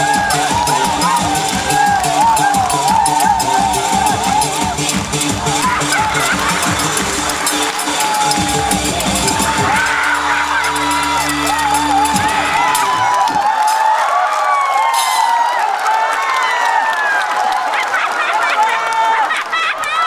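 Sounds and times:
music with a beat: 0:00.0 - 0:13.9
audience cheering and whooping: 0:00.0 - 0:20.0.

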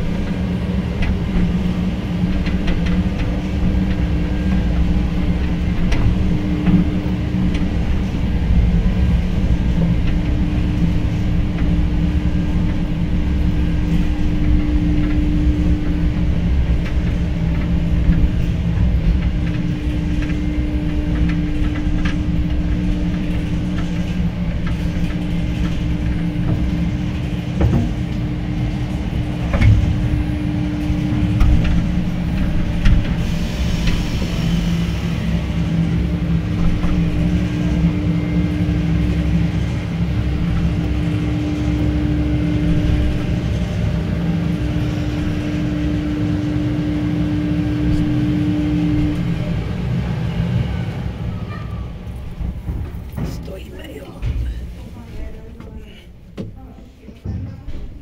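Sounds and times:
cable car rumble and hum: 0:00.0 - 0:58.0.

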